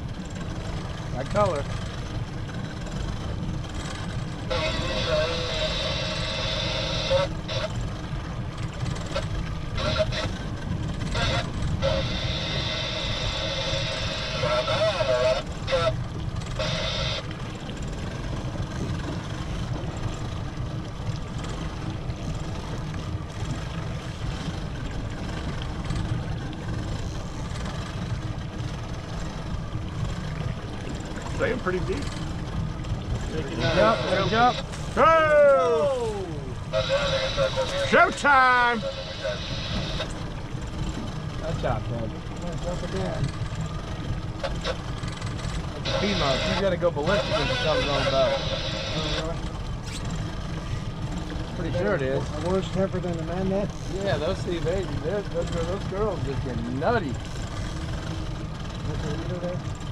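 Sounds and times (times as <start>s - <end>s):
outboard motors rumbling: 0.0s - 59.9s.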